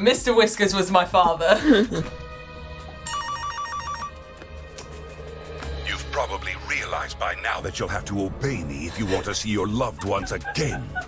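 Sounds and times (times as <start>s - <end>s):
soft background music: 0.0s - 11.0s
electronic ringtone trill: 3.1s - 4.1s.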